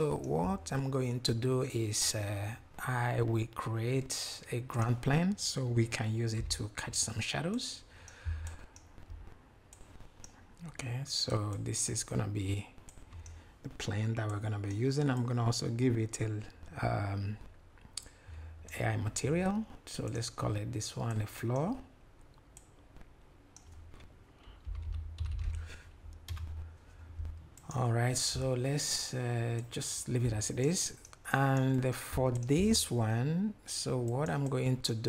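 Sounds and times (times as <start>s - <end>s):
low hum: 22.6s - 28.6s
typing on computer keyboard: 24.5s - 26.6s.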